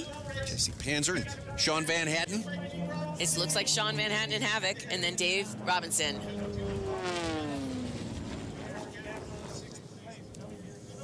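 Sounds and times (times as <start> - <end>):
propeller plane flying past: 2.5 - 9.8.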